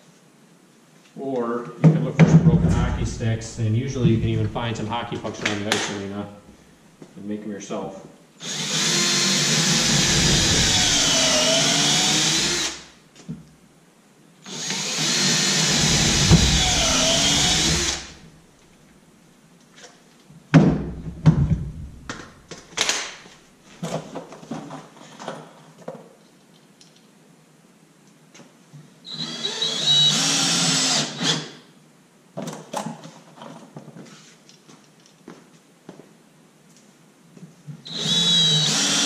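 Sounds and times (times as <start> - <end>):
cordless drill driving screws: 8.4 - 12.9, 14.5 - 18.2, 29.1 - 31.6, 37.8 - 39.0
knocks and clatter: 20.6 - 23.0.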